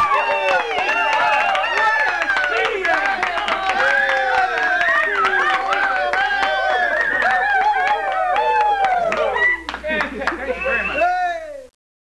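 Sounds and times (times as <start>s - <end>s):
sharp handclaps: 0.0s - 10.5s.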